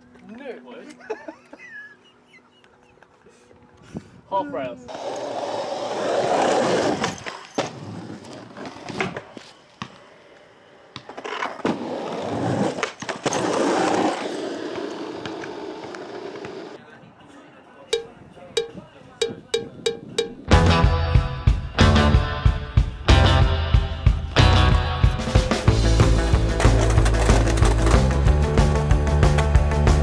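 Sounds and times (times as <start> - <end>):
skateboard wheels rolling on concrete: 4.8 - 16.8, 24.4 - 30.0
skateboard clacking on ground: 12.7 - 16.8, 26.5 - 28.2
plucked notes: 17.9 - 21.1
loud rock song: 20.5 - 30.0.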